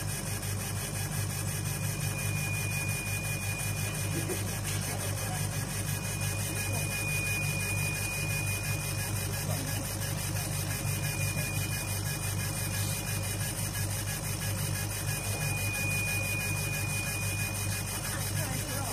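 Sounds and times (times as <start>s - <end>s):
laser engraver humming: 0.0s - 18.9s
faint high whine: 1.7s - 4.3s, 4.9s - 18.9s.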